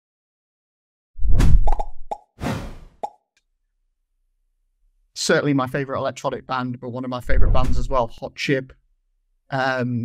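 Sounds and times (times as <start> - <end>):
deep boom: 7.3 - 8.1.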